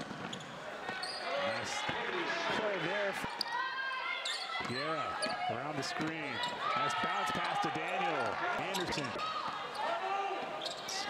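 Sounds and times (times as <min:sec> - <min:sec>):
arena voices: 0:00.6 - 0:11.0.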